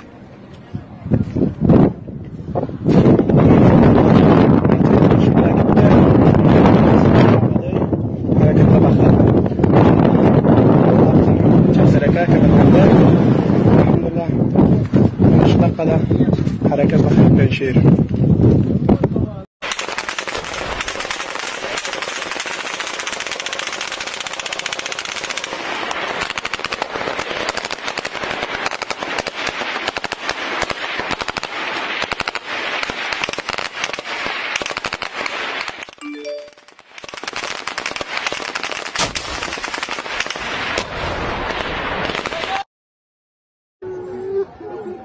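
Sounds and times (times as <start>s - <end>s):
heavy automatic gunfire: 19.6s - 36.0s, 36.7s - 42.6s.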